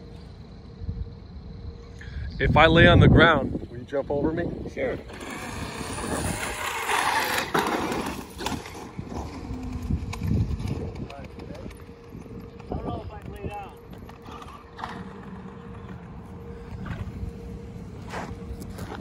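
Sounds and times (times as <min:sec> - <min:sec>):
voices: 0:01.7 - 0:06.7, 0:09.1 - 0:19.0
tyres rolling on concrete: 0:04.7 - 0:17.2
electric motor whining: 0:04.9 - 0:19.0.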